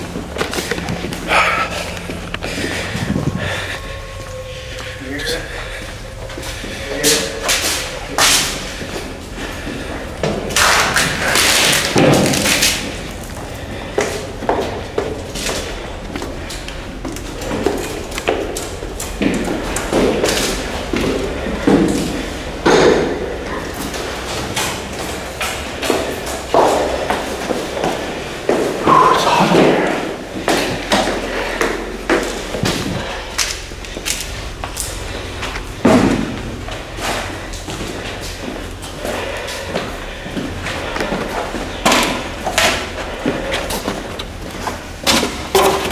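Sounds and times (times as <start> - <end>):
indistinct voices: 0.0 - 45.9.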